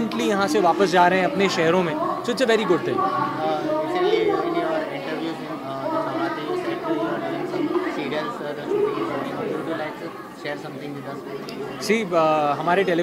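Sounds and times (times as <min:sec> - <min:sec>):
overlapping voices talking: 0:00.0 - 0:13.0.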